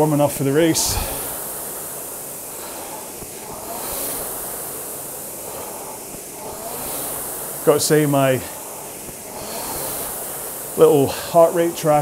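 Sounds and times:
rowing machine flywheel whooshing: 0:00.0 - 0:12.0
steady hiss: 0:00.0 - 0:12.0.

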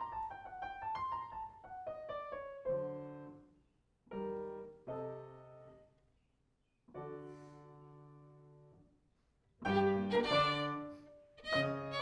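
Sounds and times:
violin and piano duet: 0:09.6 - 0:12.0.

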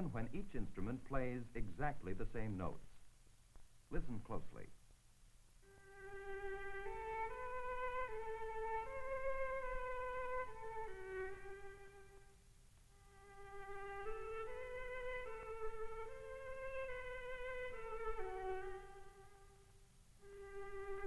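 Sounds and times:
solo bowed violin melody: 0:05.6 - 0:12.4, 0:13.0 - 0:21.0.

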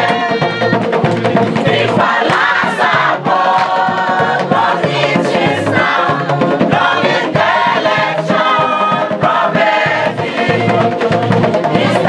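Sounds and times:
women singing together: 0:00.0 - 0:12.0.

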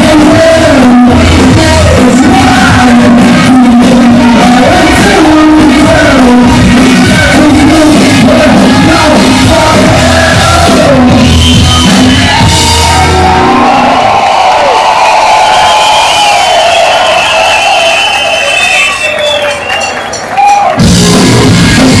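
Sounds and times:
punk band playing live: 0:00.0 - 0:15.4, 0:20.4 - 0:22.0
crowd voices: 0:00.0 - 0:22.0.

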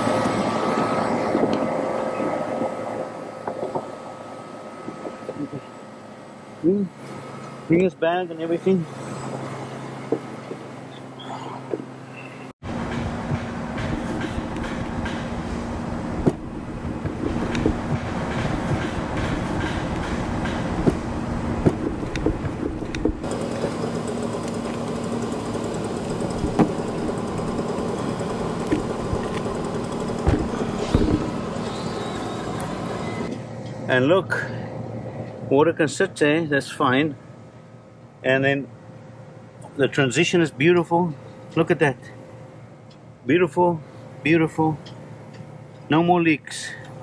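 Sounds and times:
air conditioning machinery hum: 0:00.0 - 0:47.0.

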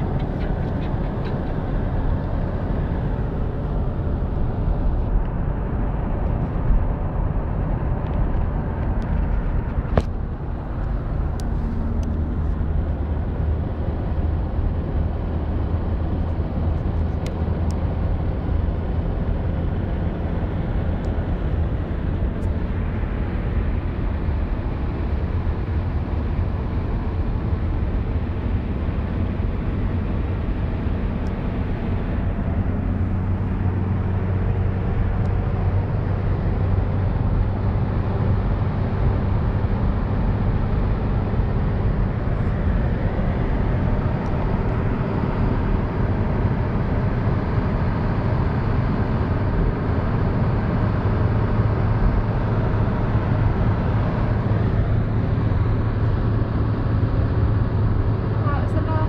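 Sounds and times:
car engine drone: 0:00.0 - 0:59.0.

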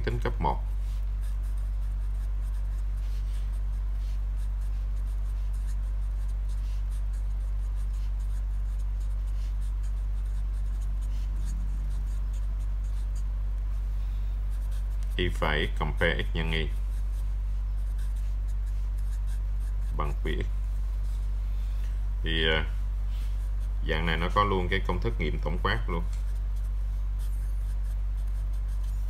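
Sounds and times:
low electrical hum: 0:00.0 - 0:29.0
marker scratching on paper: 0:00.2 - 0:21.3, 0:22.3 - 0:29.0.

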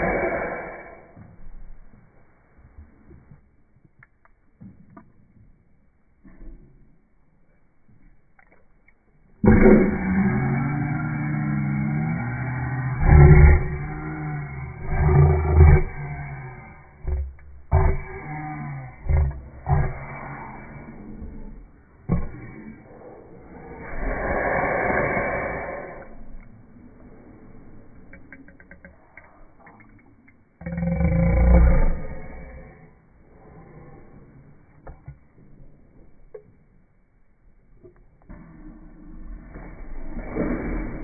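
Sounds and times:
person's vocal noises and breaths: 0:00.0 - 0:03.9, 0:06.2 - 0:36.6, 0:37.8 - 0:41.0.

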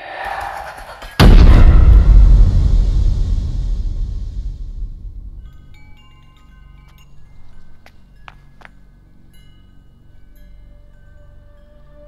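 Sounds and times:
deep cinematic boom: 0:01.2 - 0:06.0.

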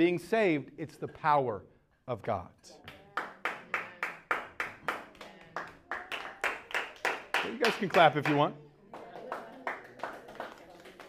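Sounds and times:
hands clapping: 0:02.8 - 0:11.0.

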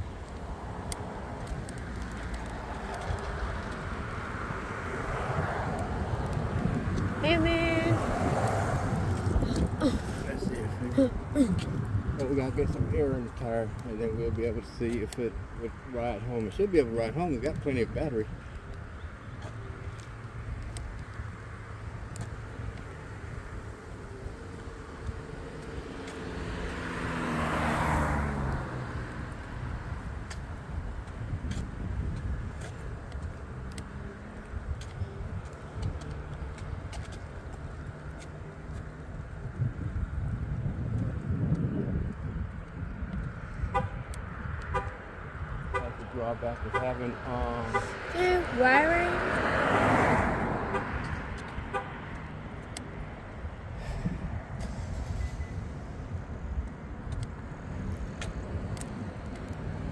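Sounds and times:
vehicles passing: 0:00.0 - 0:59.9.

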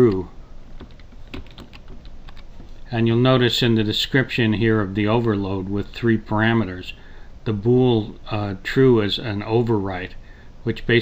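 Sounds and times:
keyboard keys clicking: 0:00.0 - 0:02.8.

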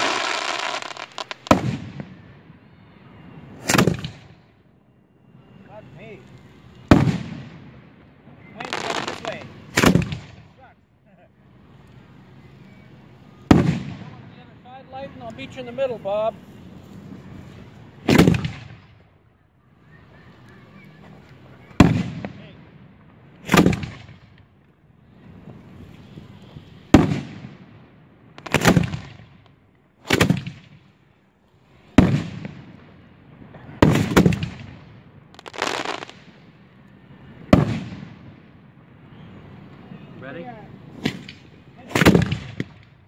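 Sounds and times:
fireworks booming: 0:00.0 - 0:04.6, 0:05.6 - 0:10.7, 0:11.5 - 0:14.6, 0:15.2 - 0:19.2, 0:21.0 - 0:31.0, 0:31.7 - 0:36.6, 0:37.2 - 0:40.0, 0:40.6 - 0:43.0.

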